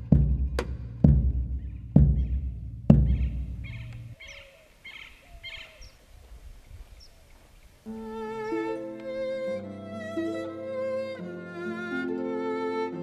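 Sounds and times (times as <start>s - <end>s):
deep drum hits: 0.0s - 4.2s
birds chirping: 0.0s - 8.8s.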